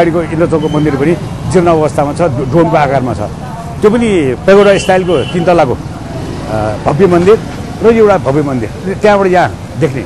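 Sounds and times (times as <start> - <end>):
man speaking: 0.0 - 5.8, 6.4 - 10.0.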